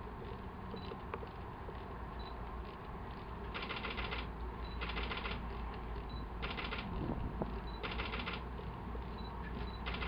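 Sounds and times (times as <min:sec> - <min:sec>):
steady low rumble: 0:00.0 - 0:10.0
rapid mechanical clicks: 0:00.1 - 0:10.0.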